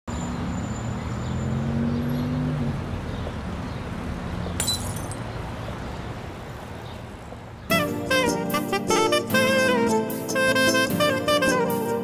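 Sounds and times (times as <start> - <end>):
glass clink: 4.6 - 5.2.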